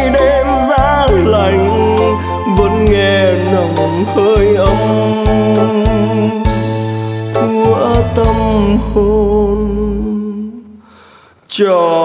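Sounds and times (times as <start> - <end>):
backing music: 0.0 - 10.8
person singing a long note: 7.4 - 10.8.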